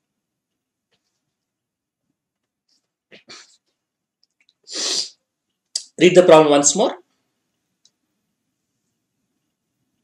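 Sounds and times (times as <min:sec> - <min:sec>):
man sneezing: 0:04.7 - 0:05.2
short breaths: 0:04.7 - 0:05.2.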